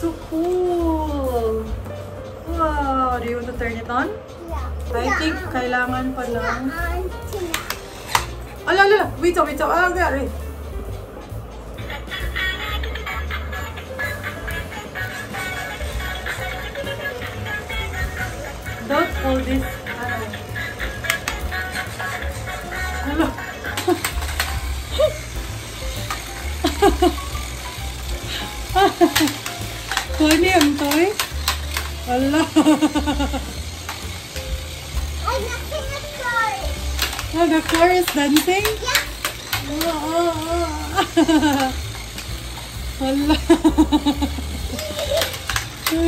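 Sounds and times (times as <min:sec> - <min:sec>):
toy car running: 0:03.2 - 0:46.0
laughter: 0:26.6 - 0:27.2, 0:32.3 - 0:33.5, 0:41.0 - 0:41.7, 0:43.2 - 0:45.3.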